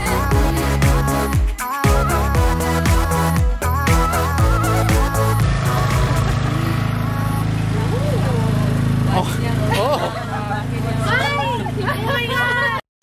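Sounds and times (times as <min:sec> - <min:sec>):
low engine hum: 0:03.0 - 0:12.8
people's voices: 0:07.6 - 0:12.8.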